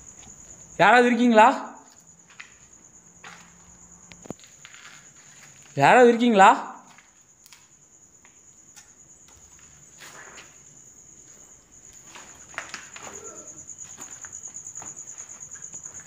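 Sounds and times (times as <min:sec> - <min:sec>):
crickets chirping: 0:00.0 - 0:16.0
faint footsteps: 0:01.8 - 0:05.8, 0:06.8 - 0:08.5, 0:09.2 - 0:16.0.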